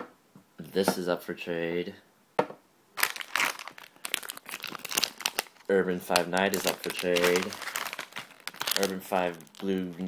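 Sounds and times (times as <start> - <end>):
wrapper crinkling: 3.0 - 10.0.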